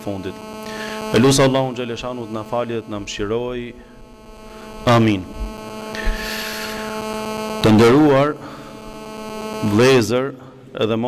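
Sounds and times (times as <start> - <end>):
electrical mains hum: 0.0 - 11.0
man speaking drawn-out words: 1.1 - 3.9, 4.8 - 5.4, 7.6 - 8.6.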